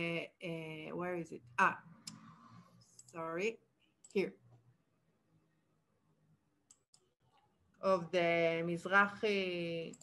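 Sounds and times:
woman speaking: 0.0 - 2.0, 3.1 - 4.4, 7.8 - 10.0
computer mouse clicks: 6.7 - 7.2.

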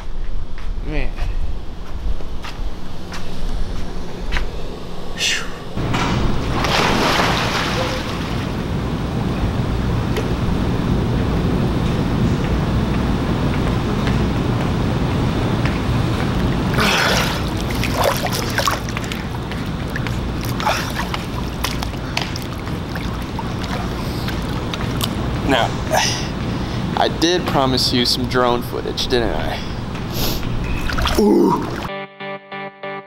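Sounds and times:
steady rumble: 0.0 - 31.9
pool water splashing: 5.8 - 11.7, 15.8 - 26.4, 30.6 - 31.9.

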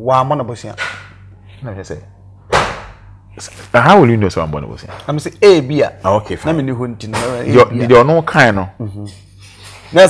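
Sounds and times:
sharp slap: 2.5 - 3.0
man speaking: 3.4 - 9.2.

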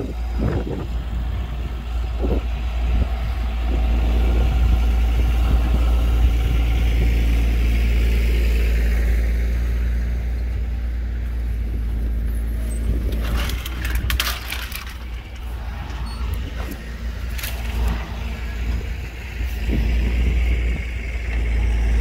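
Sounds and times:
tractor engine driving past: 0.0 - 22.0
metal clank: 12.6 - 18.4.

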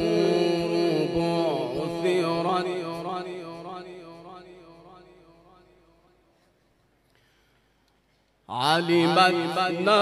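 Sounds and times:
man reciting melodically: 0.0 - 6.2, 8.4 - 10.0.

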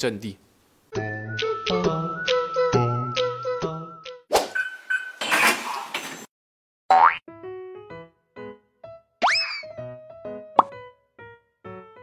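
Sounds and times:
playful background music: 0.9 - 4.2, 6.9 - 12.0.

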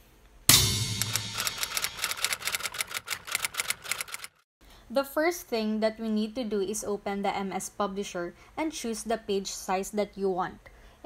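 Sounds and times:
typewriter key clicks: 1.0 - 4.3.

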